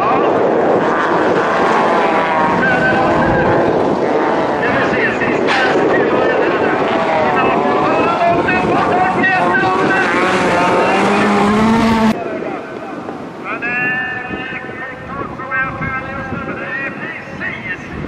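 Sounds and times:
distant engines revving: 0.0s - 12.2s
race car engines revving: 0.0s - 13.7s.

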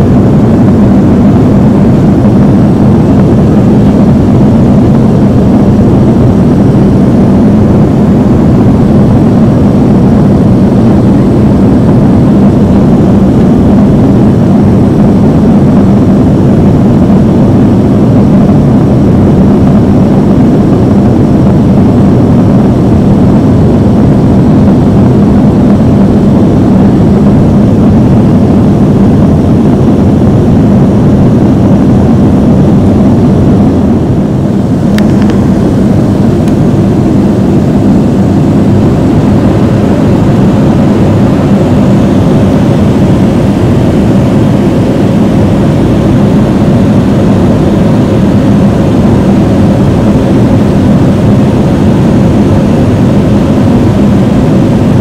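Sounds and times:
jet engines and air rushing: 0.0s - 55.0s
steady hum: 0.0s - 55.0s.

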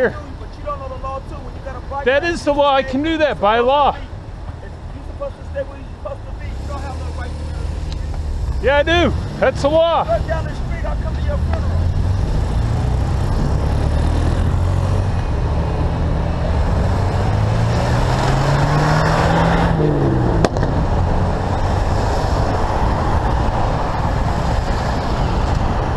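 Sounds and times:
traffic and road noise: 0.0s - 25.9s.

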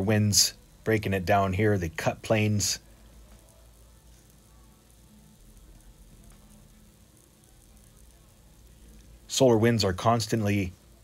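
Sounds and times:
faint steady low hum: 0.0s - 11.0s.

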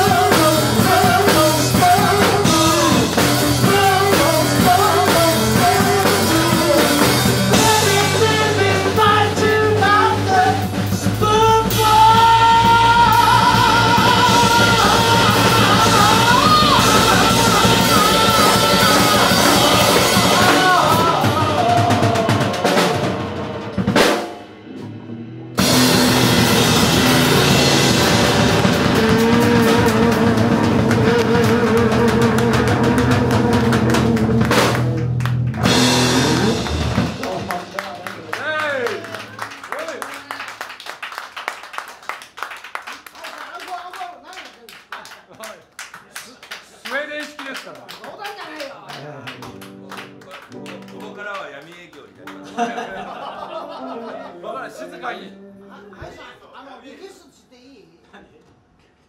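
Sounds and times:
bending electric guitar line: 0.0s - 39.4s
electric blues band playing: 0.0s - 39.7s, 48.9s - 55.9s
audience clapping: 28.5s - 53.5s.

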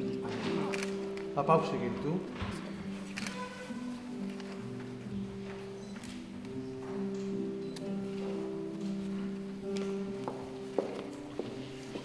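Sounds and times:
quiet background music: 0.0s - 12.0s
footsteps on stone floor: 8.2s - 12.0s.

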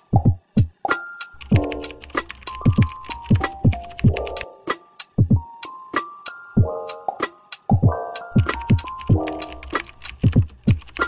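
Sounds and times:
electronic music with bass drum: 1.4s - 4.4s
keyboard typing clicks: 1.4s - 4.5s, 8.4s - 11.0s.

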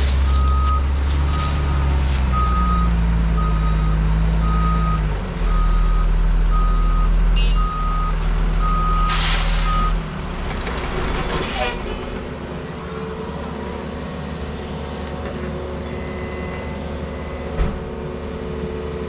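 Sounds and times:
truck engine running: 0.0s - 19.0s
hiss burst: 9.1s - 9.9s.

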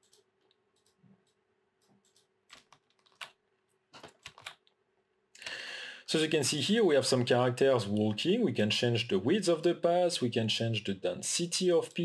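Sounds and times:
keyboard and mouse clicks: 0.0s - 3.4s, 4.0s - 4.8s.

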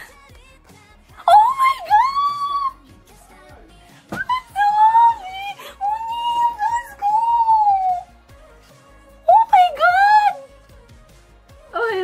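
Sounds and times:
woman squealing: 1.2s - 2.8s, 4.2s - 8.1s.

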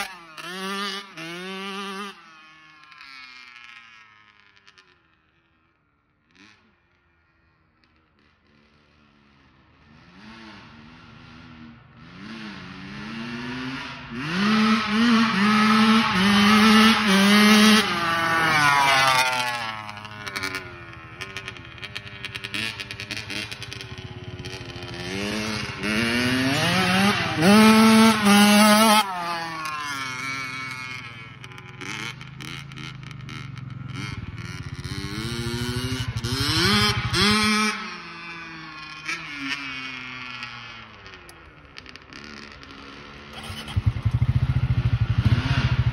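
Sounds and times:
dirt bike engine revving: 0.0s - 2.6s, 9.9s - 41.2s, 42.1s - 45.9s.

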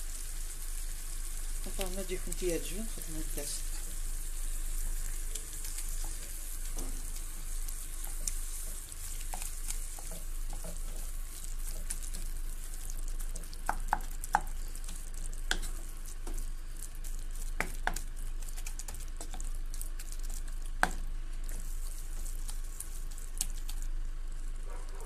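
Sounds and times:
greens and cheese sizzling in pan: 0.0s - 25.0s.

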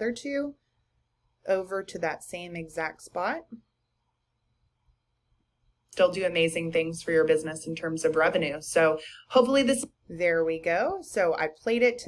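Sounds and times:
woman speaking: 0.0s - 0.6s, 1.5s - 3.6s, 6.0s - 12.0s.

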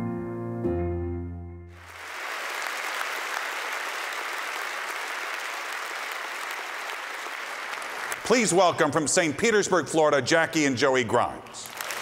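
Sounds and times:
piano music: 0.0s - 1.8s
audience applauding: 1.7s - 9.2s, 11.6s - 12.0s.

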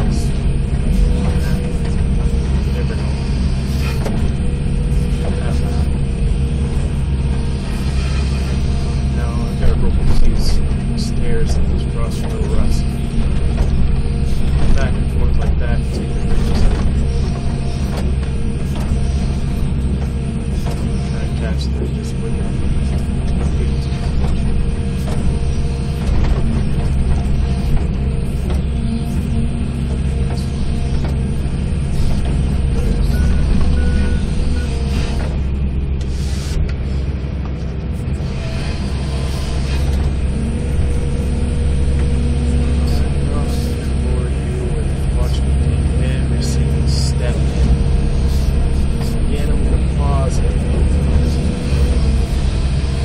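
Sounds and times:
excavator diesel engine running: 0.0s - 53.0s
hydraulics working: 0.0s - 53.0s.

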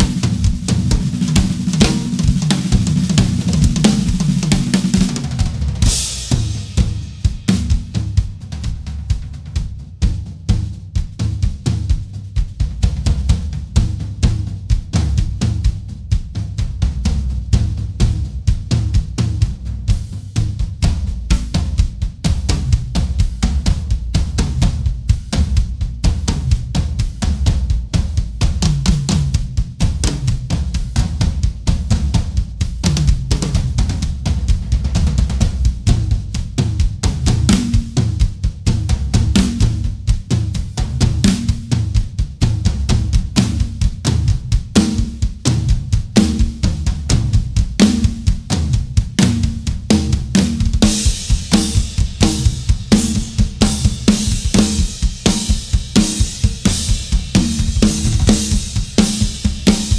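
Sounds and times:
drum kit solo: 0.0s - 59.9s
tom fills: 47.8s - 59.9s.

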